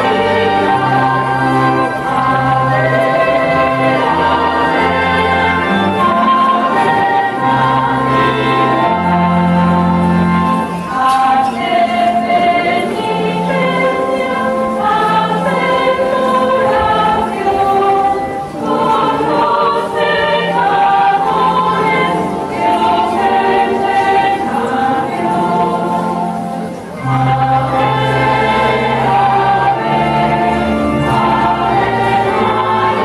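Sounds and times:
choir singing a hymn: 0:00.0 - 0:33.0.

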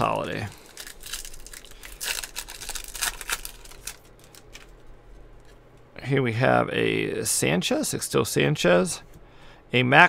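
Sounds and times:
foil wrapper tearing and crinkling: 0:00.0 - 0:04.8.

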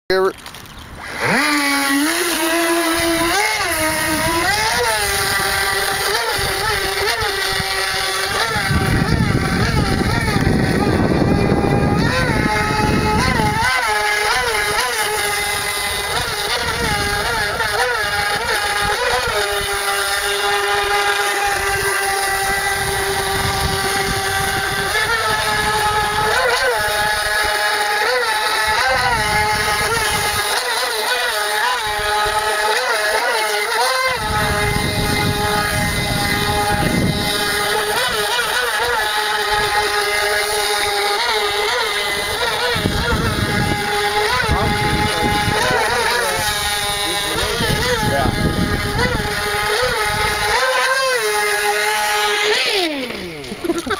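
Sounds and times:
electric motor whining: 0:00.1 - 0:53.9.

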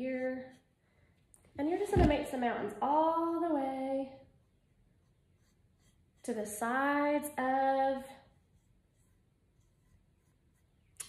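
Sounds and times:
paintbrush scratching on wood: 0:05.0 - 0:06.6, 0:08.3 - 0:11.0.

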